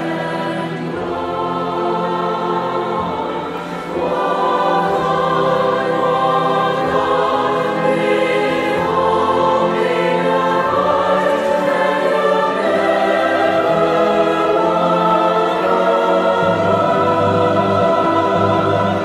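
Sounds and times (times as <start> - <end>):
choir singing a slow ballad: 0.0 - 19.0
orchestral woodwinds and brass: 0.0 - 19.0.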